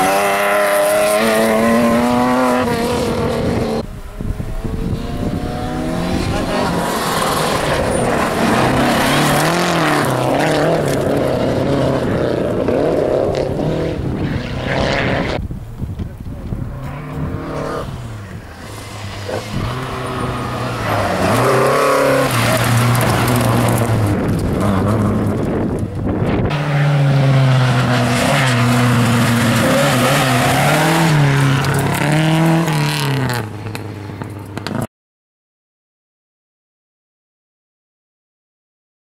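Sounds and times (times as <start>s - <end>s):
rally car engines revving: 0.0s - 15.4s, 16.0s - 34.9s
gravel scraping under tyres: 0.0s - 34.9s.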